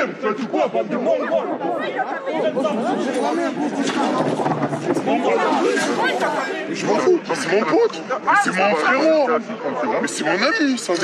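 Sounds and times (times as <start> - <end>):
several voices talking agitatedly: 0.0 - 11.0.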